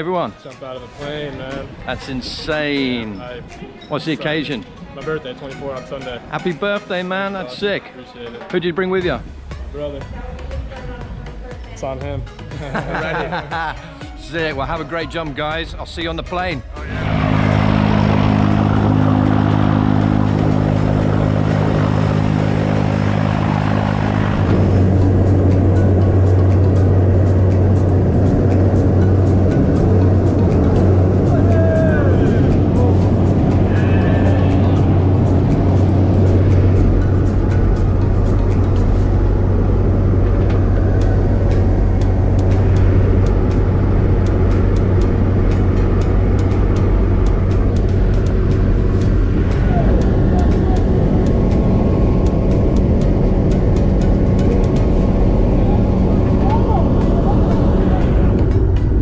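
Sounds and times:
propeller plane engine drone: 0:16.6 - 0:59.0.

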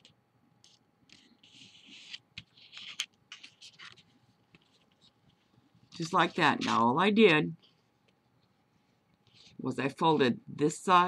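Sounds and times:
paper rustling and crackling: 0:00.7 - 0:06.8.

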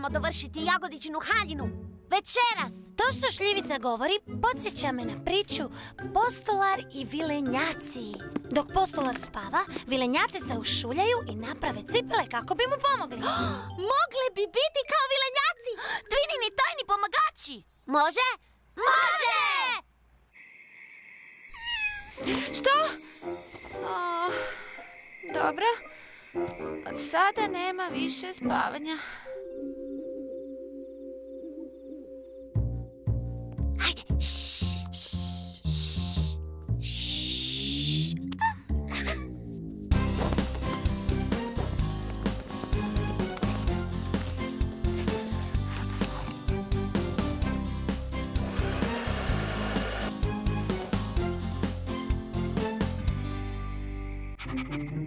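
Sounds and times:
cartoon cat meow: 0:21.6 - 0:22.2.

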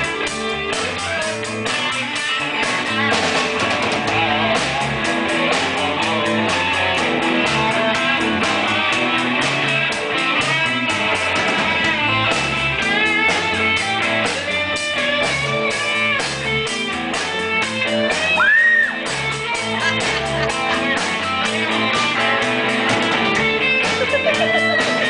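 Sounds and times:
bass line: 0:00.0 - 0:25.0
drum beat: 0:00.0 - 0:25.0
lead electric guitar bending notes: 0:00.0 - 0:25.0.

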